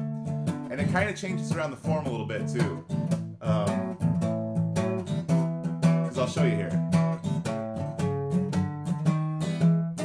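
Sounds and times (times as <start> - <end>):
acoustic guitar strumming blues: 0.0 - 10.0.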